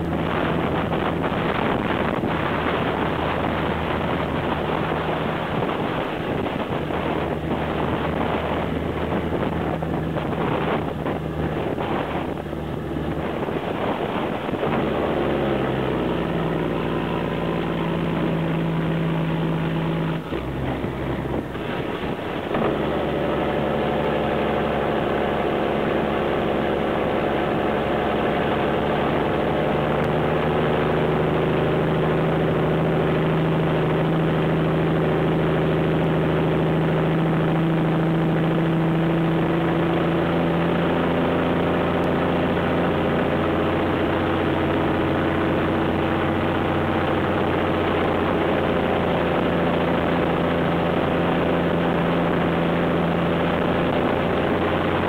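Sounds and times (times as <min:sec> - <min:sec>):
diesel truck engine droning: 0:00.0 - 0:55.0.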